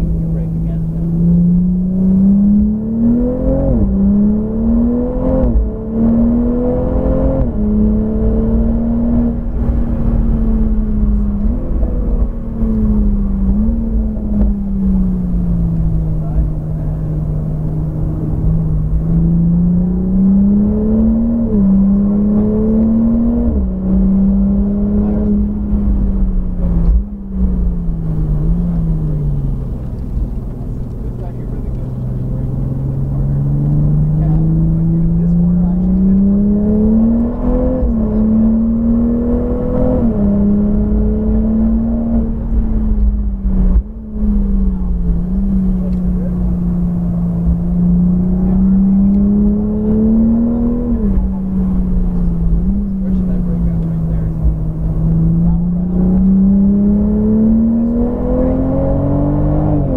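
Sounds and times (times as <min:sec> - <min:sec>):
car engine revving with gear changes: 0:00.0 - 0:59.9.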